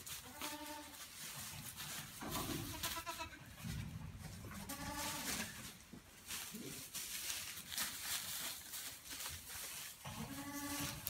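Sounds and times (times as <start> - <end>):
rustling of dry leaves: 0.0 - 11.0
goat kids bleating: 0.2 - 1.0, 2.4 - 3.6, 4.4 - 5.6, 10.1 - 11.0.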